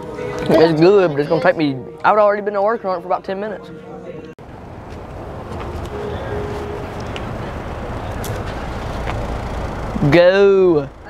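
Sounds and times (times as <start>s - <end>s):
cars passing and idling: 0.0s - 11.0s
faint footsteps: 4.2s - 9.9s.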